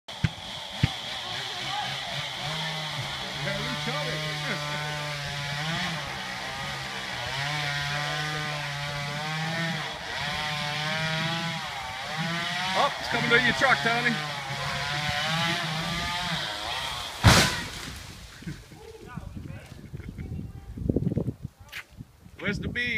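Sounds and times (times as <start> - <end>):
chainsaw cutting wood: 0.1 - 18.7.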